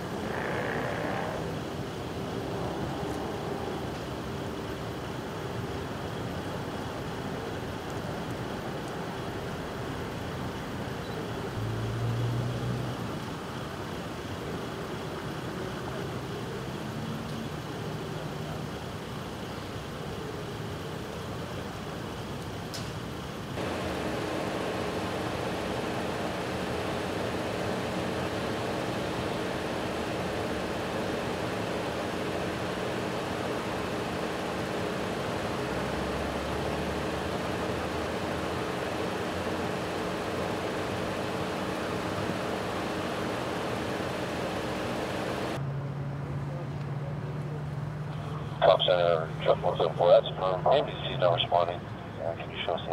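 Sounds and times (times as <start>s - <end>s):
road noise: 0.0s - 52.9s
vehicle engines idling: 0.0s - 52.9s.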